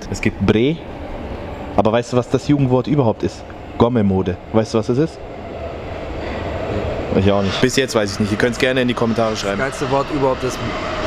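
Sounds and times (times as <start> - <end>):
subway train rumble: 0.0 - 11.0.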